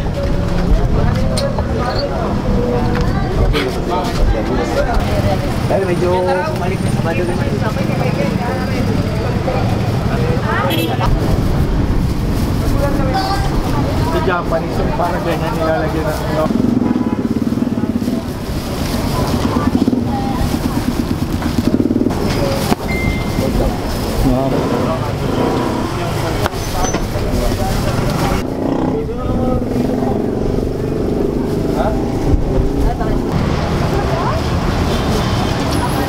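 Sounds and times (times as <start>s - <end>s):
people talking: 0.0s - 11.6s, 12.6s - 21.2s, 22.1s - 36.0s
low rumble of street noise: 0.0s - 36.0s.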